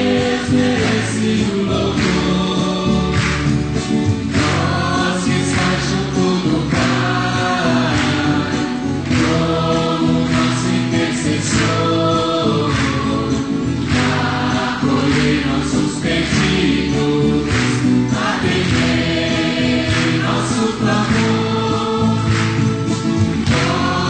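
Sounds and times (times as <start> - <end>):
choir singing a hymn: 0.0 - 24.0.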